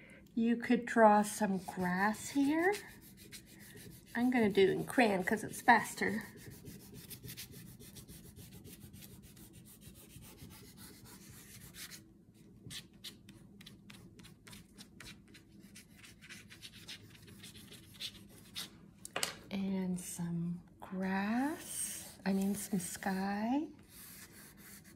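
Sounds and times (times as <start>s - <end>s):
crayon scribbling on paper: 1.5s - 12.0s, 13.6s - 18.7s, 23.9s - 24.9s.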